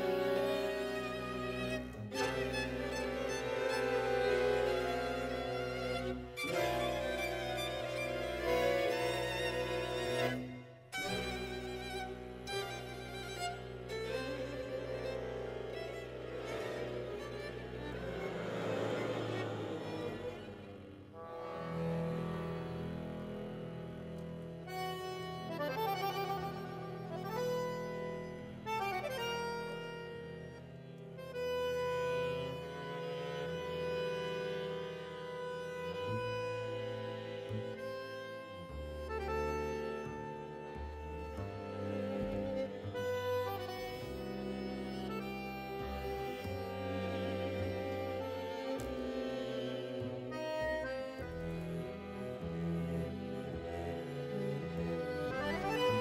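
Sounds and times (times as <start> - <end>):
accordion tango melody: 0.0 - 56.0
string ensemble: 0.0 - 56.0.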